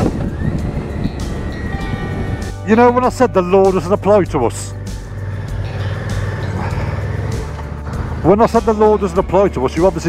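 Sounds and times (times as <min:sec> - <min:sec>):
background music: 0:00.0 - 0:10.0
motorcycle engine running: 0:00.0 - 0:10.0
road and wind rumble: 0:00.0 - 0:10.0.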